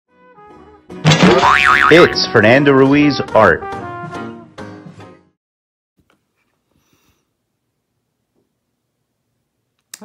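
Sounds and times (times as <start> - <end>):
cartoon boing sound effect: 1.1 - 2.2.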